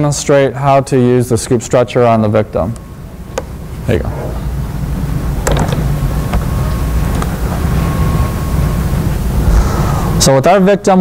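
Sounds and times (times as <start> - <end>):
faint high hum: 0.0 - 11.0
low background rumble: 2.1 - 11.0.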